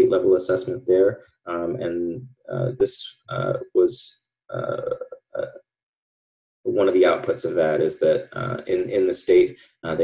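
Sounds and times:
man saying uh: 0.0 - 5.6, 6.7 - 10.0.

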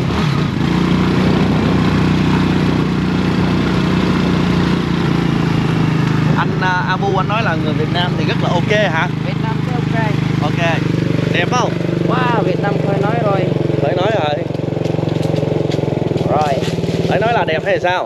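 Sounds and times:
motorbike engine running: 0.0 - 18.0
man talking: 6.3 - 12.5, 13.8 - 14.5, 16.2 - 18.0.

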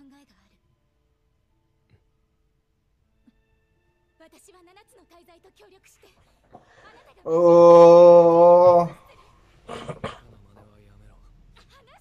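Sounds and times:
faint vocal sound: 6.6 - 9.1.

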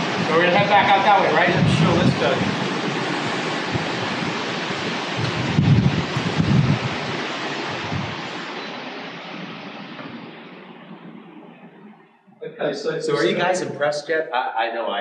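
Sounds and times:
air conditioning rushing: 0.0 - 14.4
low rumble of airflow on microphone: 1.4 - 12.5.

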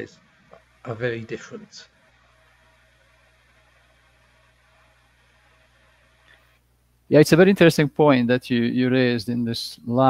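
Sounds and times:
faint hum and hiss of call audio: 0.0 - 10.0.

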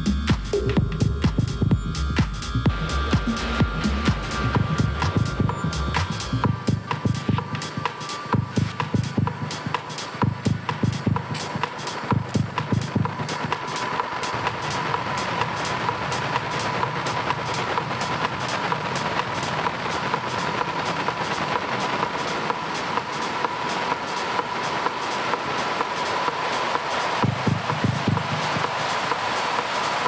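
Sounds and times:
hissing noise wash: 0.0 - 30.0
ticking hi-hat rhythm: 0.0 - 30.0
held high synth tone: 0.9 - 9.8.

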